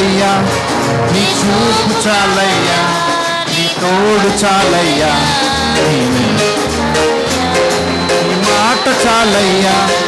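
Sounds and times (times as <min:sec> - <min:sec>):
person singing: 0:00.0 - 0:10.0
worship band playing: 0:00.0 - 0:10.0.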